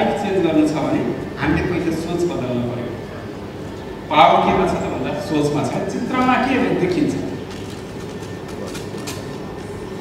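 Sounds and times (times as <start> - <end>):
room noise rumble: 0.0 - 10.0
person speaking: 1.4 - 2.2, 4.2 - 6.7.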